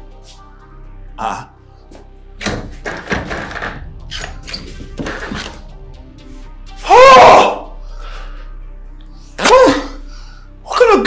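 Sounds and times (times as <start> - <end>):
quiet background music: 0.0 - 11.0
man crying out: 6.8 - 7.7.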